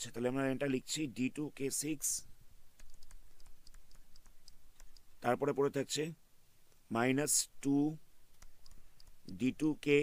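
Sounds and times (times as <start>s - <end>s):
man talking: 0.0s - 2.3s, 5.2s - 6.2s, 6.9s - 8.0s, 9.3s - 10.0s
light clicks of computer input: 2.8s - 5.1s.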